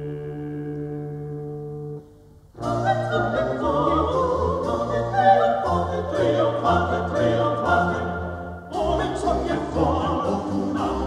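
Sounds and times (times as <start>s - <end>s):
low instrumental bass line: 0.0s - 5.2s
choir singing: 2.6s - 11.0s.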